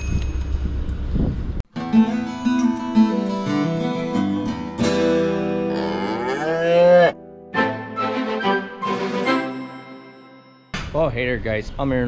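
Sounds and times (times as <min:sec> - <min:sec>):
acoustic guitar music: 0:01.7 - 0:10.4
cow mooing: 0:05.6 - 0:07.2.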